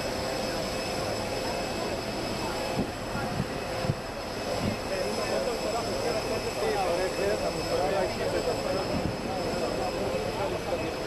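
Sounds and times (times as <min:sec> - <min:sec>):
jet engine whine and rumble: 0:00.0 - 0:11.0
murmur of voices: 0:00.1 - 0:11.0.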